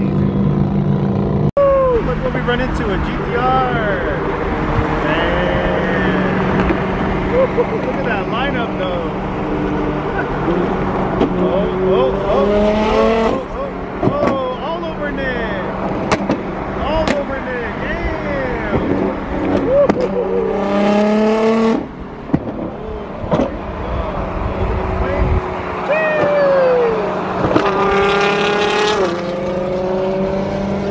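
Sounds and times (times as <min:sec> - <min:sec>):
sports car engines revving: 0:00.0 - 0:30.9.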